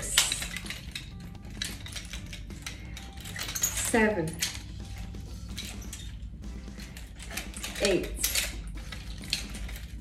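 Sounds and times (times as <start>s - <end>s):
background music: 0.0s - 10.0s
metal chain clinking: 0.0s - 10.0s.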